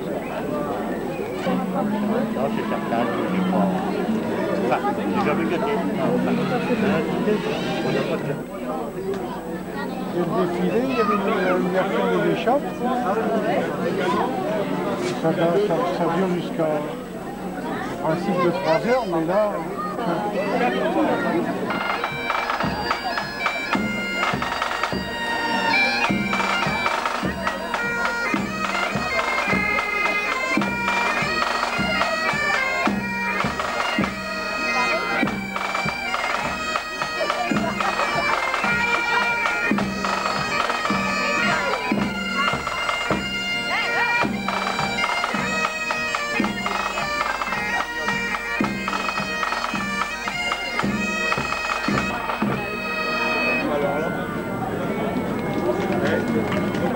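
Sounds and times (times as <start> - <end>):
bagpipes playing a tune: 0.0 - 56.9.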